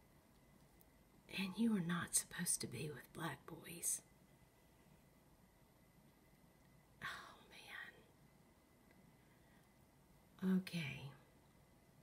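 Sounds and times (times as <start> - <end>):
faint room hiss: 0.0 - 12.0
person whispering: 7.0 - 8.1, 10.4 - 11.3.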